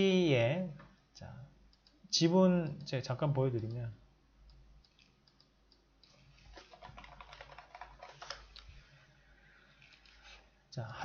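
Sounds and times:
computer keyboard typing: 4.8s - 8.7s.

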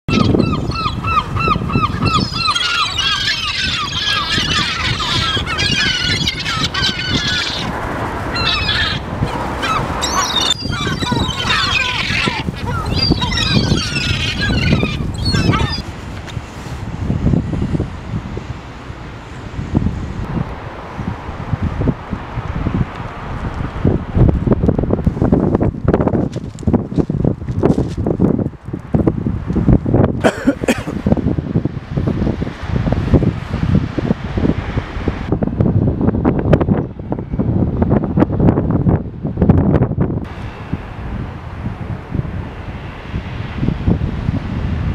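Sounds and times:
gulls calling: 0.1s - 15.9s.

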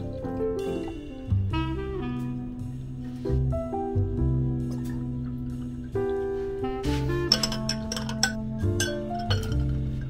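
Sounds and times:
instrumental background music: 0.0s - 10.0s
utensil clinking against glass jar: 7.3s - 10.0s.

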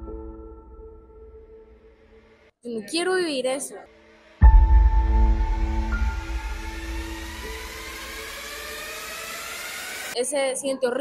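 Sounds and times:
rising riser whoosh: 3.8s - 10.2s
deep bass impact hit: 4.4s - 8.8s.

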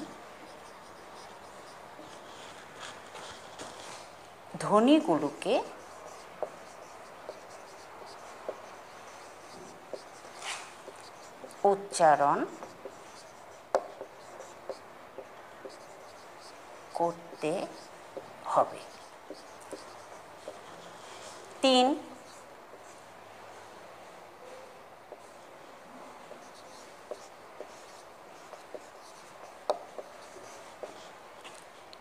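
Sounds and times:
marker writing on whiteboard: 0.0s - 3.7s, 4.6s - 23.2s, 24.4s - 32.0s
marker light taps: 13.7s - 15.8s, 29.6s - 30.1s.

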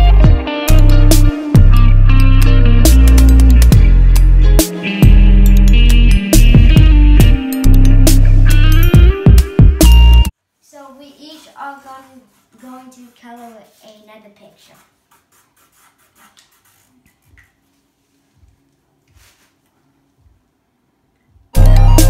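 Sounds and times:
child speaking: 10.6s - 14.9s
markers tapping on paper: 14.6s - 17.6s.

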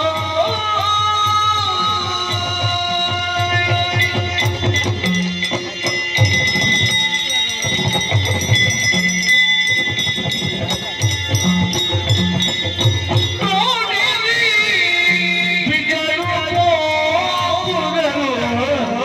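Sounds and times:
rhythmic drumming: 0.0s - 19.0s
metallic jingling strikes: 2.4s - 15.2s.

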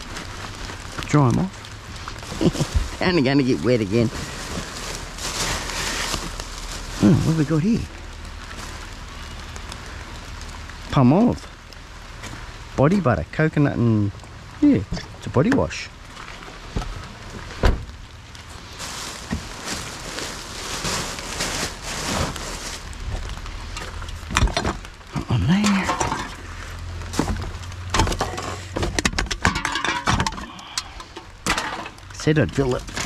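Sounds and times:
rubbish rummaged in plastic bin: 0.0s - 7.8s, 18.6s - 33.0s
cans and bottles clinking: 25.7s - 26.5s, 27.9s - 32.2s.

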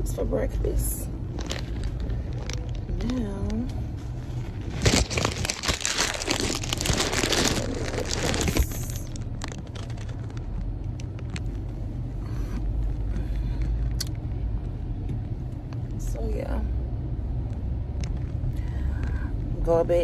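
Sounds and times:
car cabin rumble: 0.0s - 20.0s
close rustling and crinkling: 1.2s - 11.8s.

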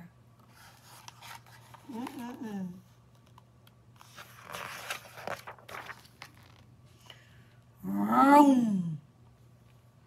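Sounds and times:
book pages turning: 0.4s - 6.8s.

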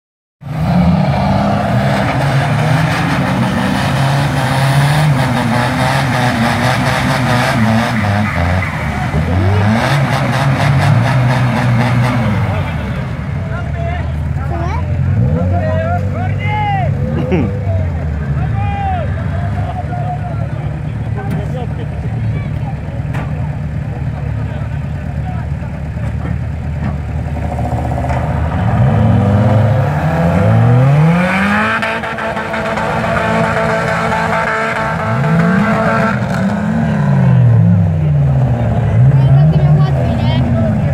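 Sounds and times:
rally car engines revving: 0.4s - 40.9s.

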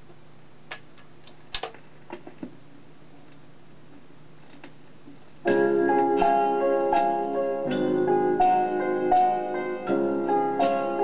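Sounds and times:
faint steady hum: 0.0s - 11.0s
record playing piano music: 5.4s - 11.0s.

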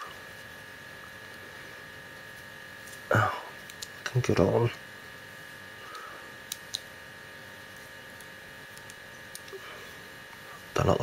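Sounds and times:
electrical hum with high whine: 0.0s - 11.0s.

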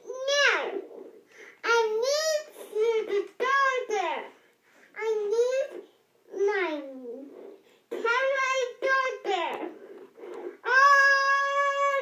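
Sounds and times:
toddler singing into toy microphone: 10.6s - 12.0s.

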